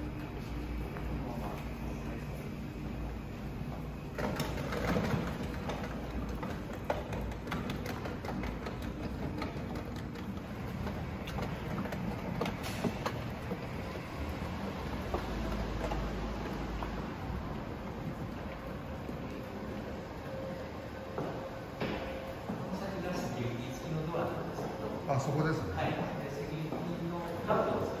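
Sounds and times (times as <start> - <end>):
delivery robot rolling rumble: 0.0 - 28.0
wheels clicking and clattering: 0.0 - 28.0.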